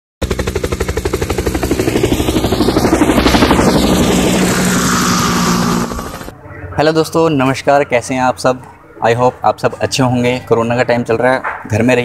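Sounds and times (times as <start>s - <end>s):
fast chopping pulse: 0.2s - 6.3s
whooshing sweep: 1.0s - 6.3s.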